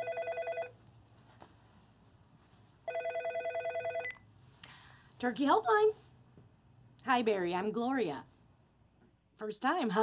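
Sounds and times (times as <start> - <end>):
telephone ringing: 0.0 - 0.8, 2.8 - 4.2.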